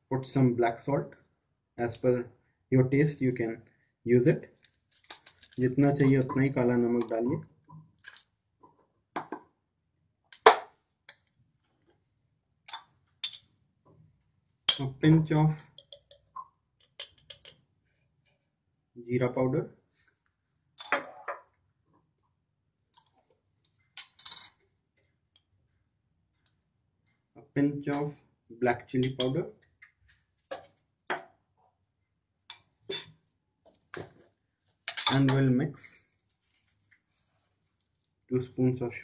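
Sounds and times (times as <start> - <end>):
glass jar clicking and tapping: 15.7 - 17.6, 29.0 - 29.4.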